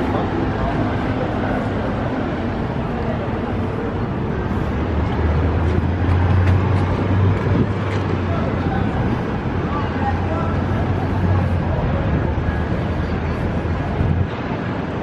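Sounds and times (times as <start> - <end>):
passersby talking: 0.0 - 15.0
traffic engine hum: 0.0 - 15.0.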